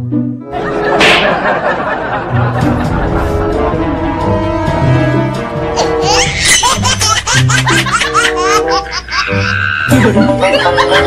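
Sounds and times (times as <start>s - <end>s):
background music sustained notes: 0.0s - 11.0s
high-pitched laughter: 5.8s - 11.0s.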